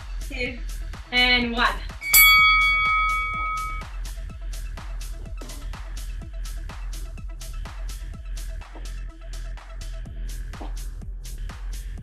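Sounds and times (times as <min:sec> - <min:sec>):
bell-like timer chime: 0:02.0 - 0:03.9.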